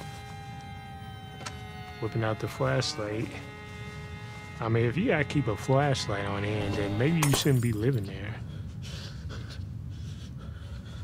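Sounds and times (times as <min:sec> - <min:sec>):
horror soundtrack drone: 0:00.0 - 0:08.5
click: 0:01.3 - 0:02.1.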